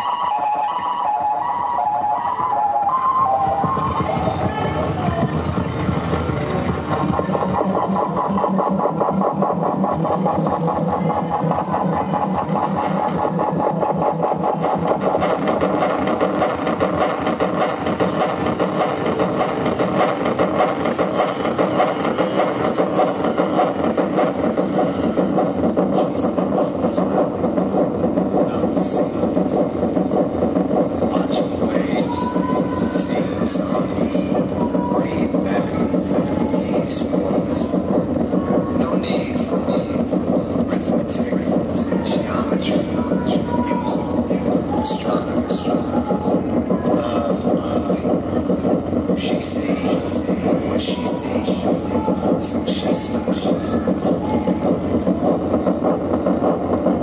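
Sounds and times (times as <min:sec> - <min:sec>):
pulsing electronic buzz: 0:00.0 - 0:57.0.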